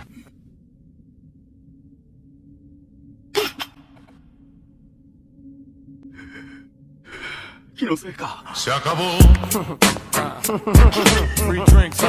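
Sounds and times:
breathy vocal sounds: 0:06.0 - 0:11.8.

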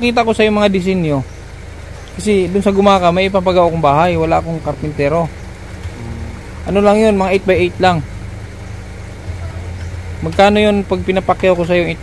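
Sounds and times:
engine idling low rumble: 0:00.0 - 0:12.0.

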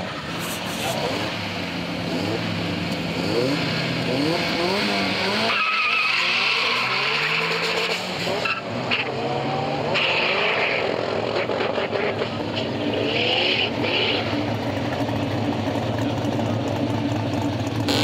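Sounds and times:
drag racing engines accelerating: 0:00.0 - 0:18.0
tire squeal: 0:03.4 - 0:14.6.

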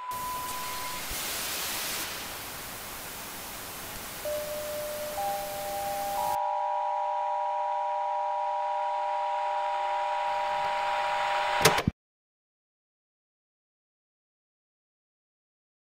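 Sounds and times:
steady electronic tones: 0:00.0 - 0:01.2, 0:02.5 - 0:07.2
television static hiss: 0:00.0 - 0:06.4.

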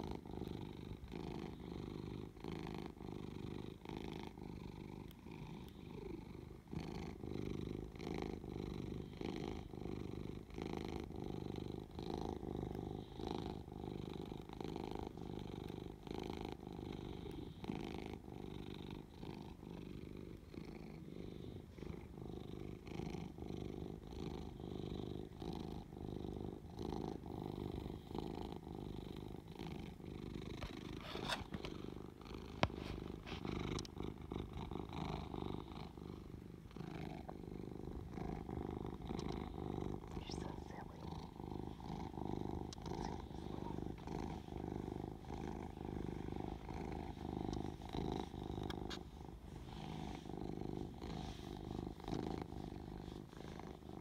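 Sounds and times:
cat purring: 0:00.0 - 0:54.0.

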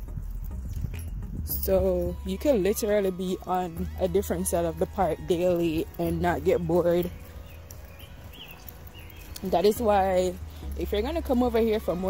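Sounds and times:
low rumble: 0:00.0 - 0:11.7.

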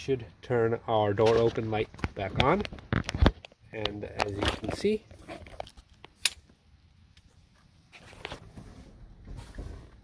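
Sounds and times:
faint rustling and handling noise: 0:00.1 - 0:06.2, 0:07.1 - 0:10.0.

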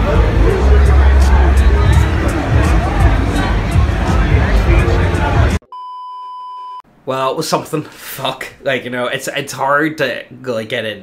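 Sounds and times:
crowd babble: 0:00.0 - 0:05.6
music: 0:00.0 - 0:05.6.

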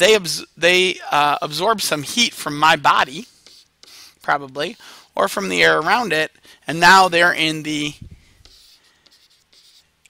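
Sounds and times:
pen scratching handwriting: 0:03.0 - 0:06.1, 0:08.4 - 0:10.0.

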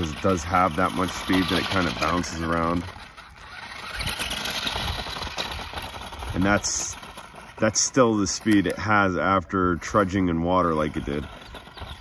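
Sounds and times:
tyres crunching on gravel: 0:00.0 - 0:12.0.

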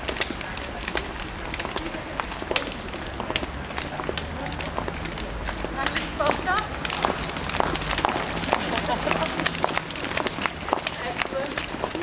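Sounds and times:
faint voices: 0:00.0 - 0:12.0
footsteps on hard ground: 0:00.0 - 0:12.0.

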